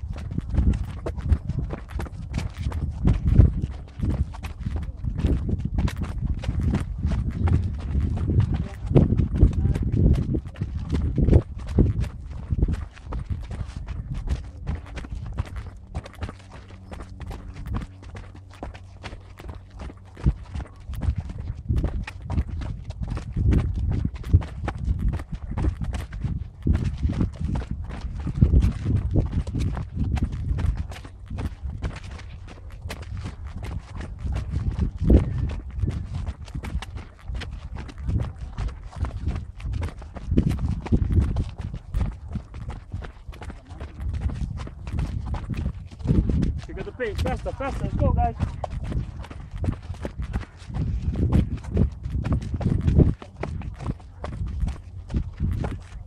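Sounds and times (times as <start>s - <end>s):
running footsteps on stairs: 0.0s - 56.0s.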